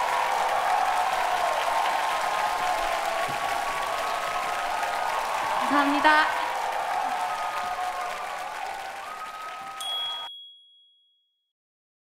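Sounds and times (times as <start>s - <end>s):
audience applauding and cheering: 0.0s - 10.3s
bright electronic ding: 9.8s - 11.1s.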